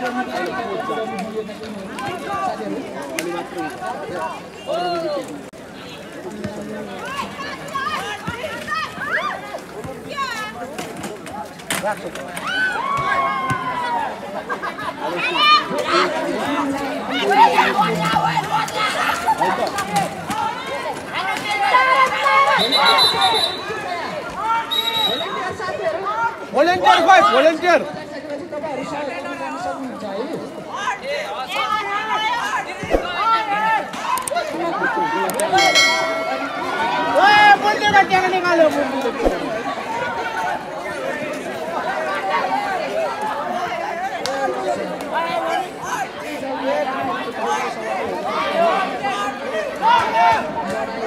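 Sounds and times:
overlapping chatter of voices: 0.0 - 51.0.

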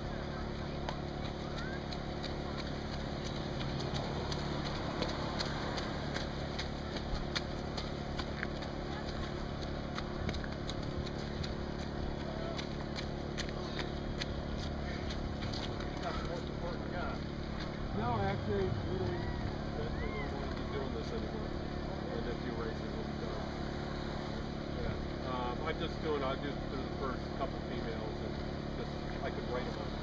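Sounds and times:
low engine hum: 0.0 - 30.0
footsteps on slushy pavement: 0.5 - 18.0
faint voices: 14.8 - 23.7.

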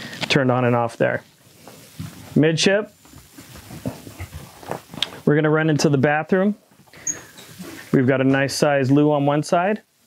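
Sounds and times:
footsteps knocking on floor: 3.0 - 5.1.

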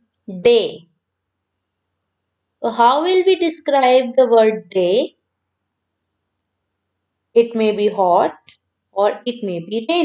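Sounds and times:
woman's voice: 0.3 - 0.9, 2.6 - 5.2, 7.4 - 10.0.

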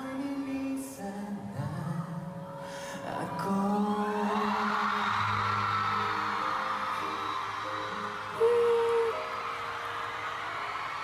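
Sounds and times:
man singing pop ballad: 0.0 - 5.7, 8.3 - 9.3
crowd cheering: 3.8 - 11.0.

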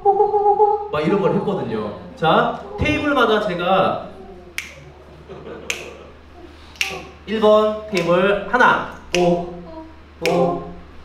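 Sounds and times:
finger snaps: 4.6 - 4.9, 5.7 - 6.0, 6.7 - 7.0, 7.9 - 8.2, 10.2 - 10.5.

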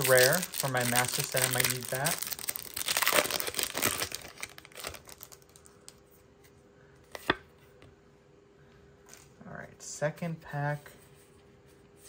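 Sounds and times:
foil wrapper crinkling and tearing: 0.0 - 5.9.

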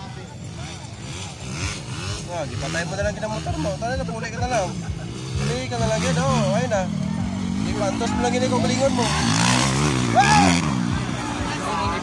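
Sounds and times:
dirt bike engines rumbling: 0.0 - 12.0
spectators talking: 0.0 - 12.0.

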